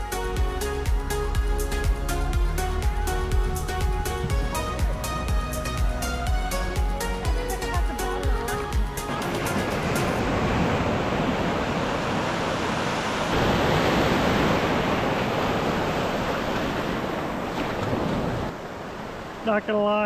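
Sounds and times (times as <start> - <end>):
background music: 0.0 - 10.4
waves breaking on sand: 9.0 - 20.0.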